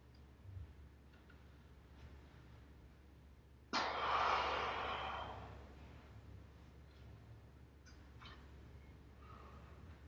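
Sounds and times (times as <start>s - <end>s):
forceful hiss of breath: 3.8s - 5.5s.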